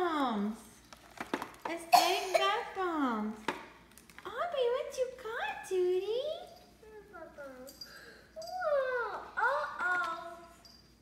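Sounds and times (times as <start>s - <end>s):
toy packaging clicks and taps: 0.9s - 1.8s.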